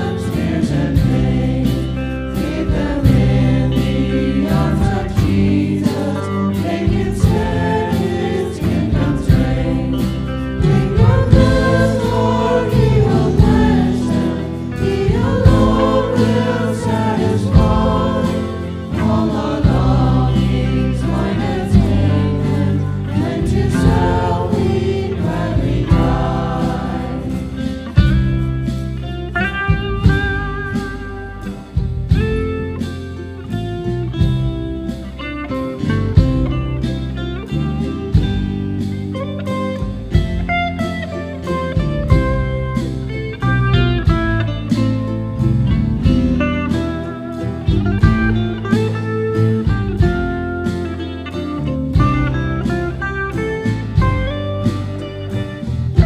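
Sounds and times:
group singing a hymn: 0.0 - 28.4
guitar: 0.0 - 56.0
small band accompanying: 0.0 - 56.0.

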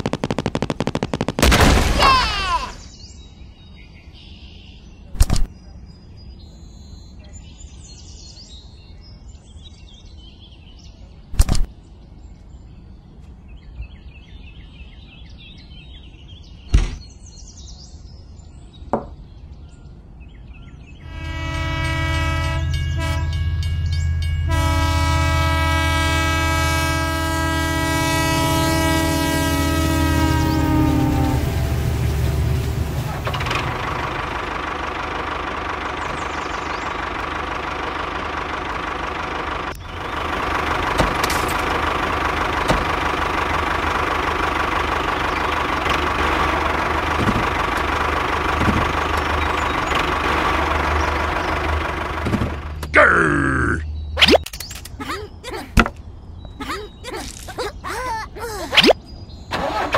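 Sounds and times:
train horn blasts: 21.0 - 33.1
train rumbling: 21.0 - 53.0.

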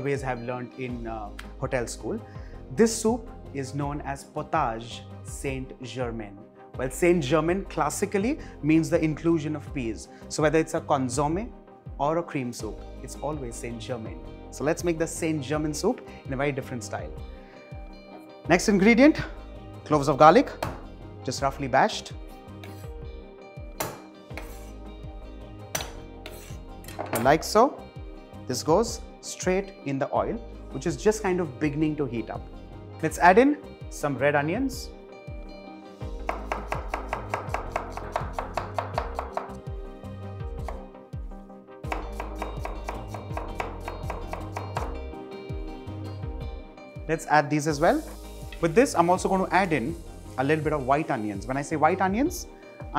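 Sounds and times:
background music: 0.0 - 52.9
knife knocking on chopping board: 20.6 - 20.8, 36.2 - 39.6
knife chopping on wooden board: 23.8 - 24.7, 25.7 - 27.3, 36.2 - 39.6, 40.6 - 40.9, 41.9 - 45.0.

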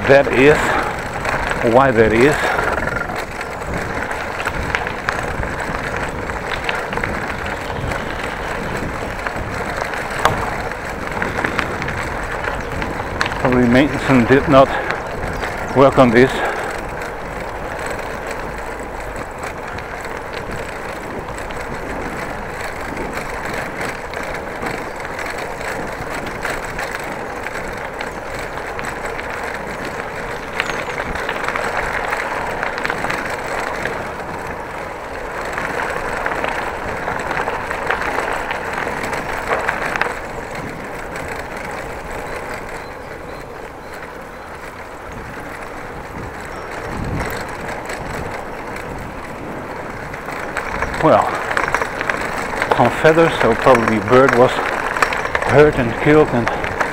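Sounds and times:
bicycle tyres rolling on gravel: 0.0 - 56.9.

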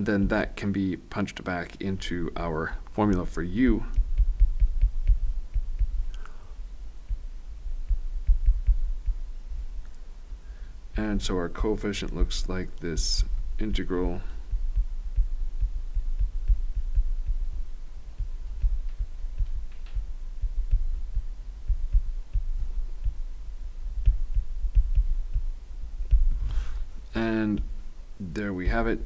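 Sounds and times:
stylus thumping on a tablet: 3.1 - 6.3, 7.0 - 9.3, 13.4 - 26.8.

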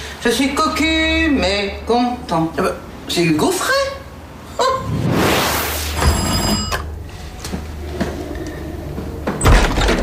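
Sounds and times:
brief rushing noise: 4.6 - 6.5.

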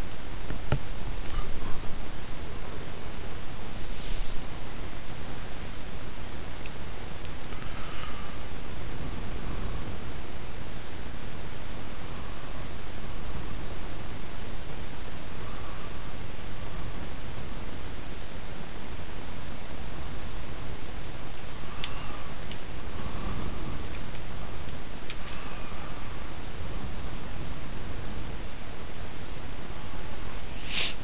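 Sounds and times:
microphone background hiss: 0.0 - 31.0
faint clicks: 21.8 - 22.7.

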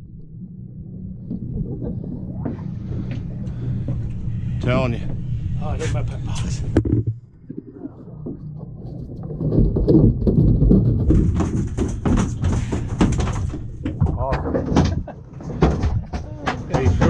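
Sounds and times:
low rumble: 0.0 - 17.0
voices: 4.4 - 6.8, 16.1 - 17.0
fish thumping on deck: 9.8 - 17.0.

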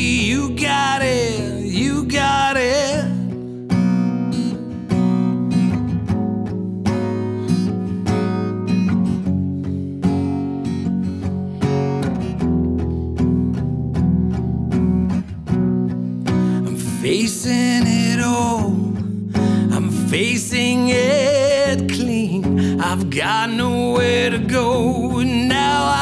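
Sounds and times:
acoustic guitar playing chords: 0.0 - 26.0.

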